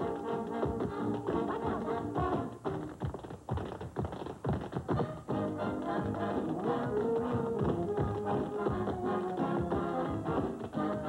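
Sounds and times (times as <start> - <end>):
tap shoes on hard floor: 0.0 - 11.0.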